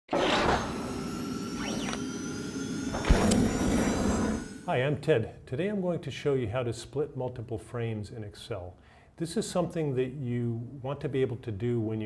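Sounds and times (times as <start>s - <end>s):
rising and falling glide: 0.1s - 4.7s
steady synthesized tones: 0.8s - 5.0s.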